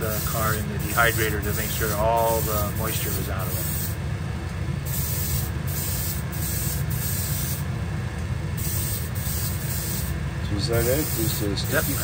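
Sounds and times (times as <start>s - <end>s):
airbrush hissing: 0.0s - 4.0s, 4.8s - 7.7s, 8.6s - 10.2s, 10.8s - 12.0s
exhaust fan humming: 0.0s - 12.0s.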